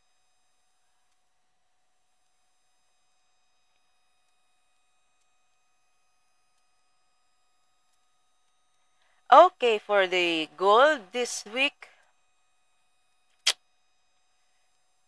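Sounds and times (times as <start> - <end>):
faint steady electrical tones: 0.0 - 15.0.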